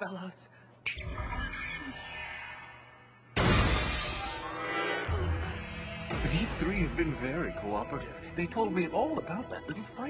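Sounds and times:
dramatic crash sting: 3.4s - 7.2s
background music: 3.4s - 10.0s.

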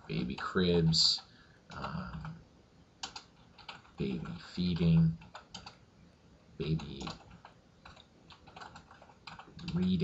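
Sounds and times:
computer keyboard typing: 0.0s - 2.4s, 3.0s - 5.8s, 6.6s - 10.0s.

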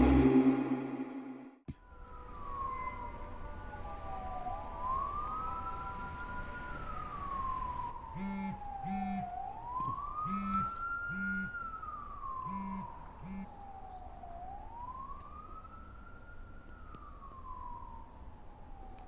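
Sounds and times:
wailing siren: 0.0s - 19.0s
short low buzzing tones: 8.2s - 11.5s, 12.5s - 13.5s.

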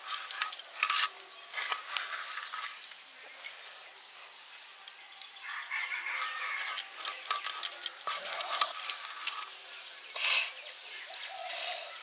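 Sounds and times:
bird chirping: 1.2s - 12.0s
blade clicking and scraping fish: 6.2s - 9.6s.

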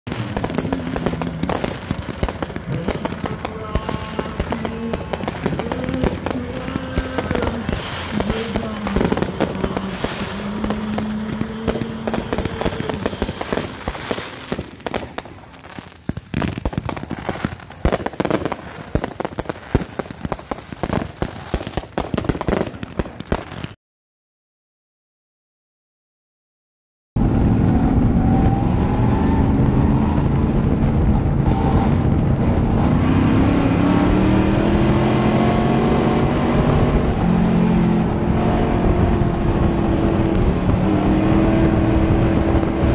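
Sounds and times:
fireworks bangs and crackles: 0.0s - 23.8s, 27.9s - 42.9s
people's voices: 0.1s - 15.9s.

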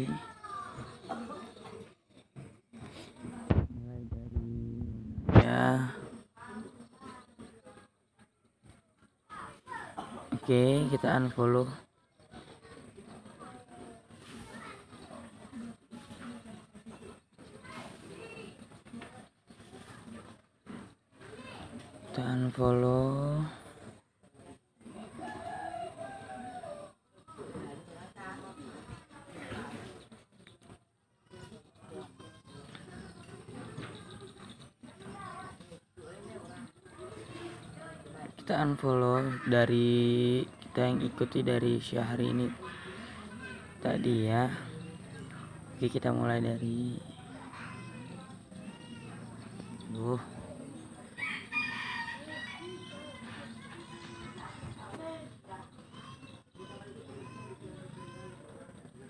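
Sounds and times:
rooster crowing: 51.2s - 53.4s.

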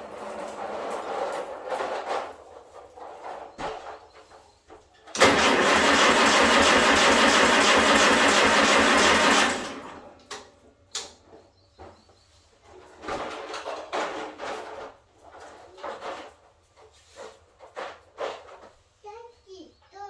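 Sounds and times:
tractor starter motor cranking: 5.0s - 11.1s.

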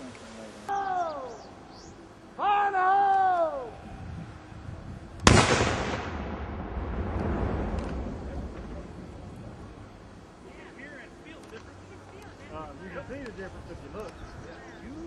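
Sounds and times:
person shouting: 0.7s - 1.5s, 2.4s - 3.8s
explosion blast with rumble: 5.2s - 9.9s.

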